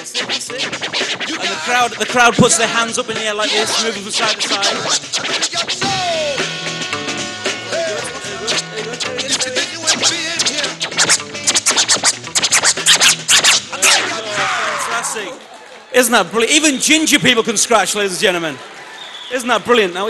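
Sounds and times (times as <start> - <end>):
music beat playing: 0.0 - 14.5
vinyl record scratching: 0.0 - 15.2.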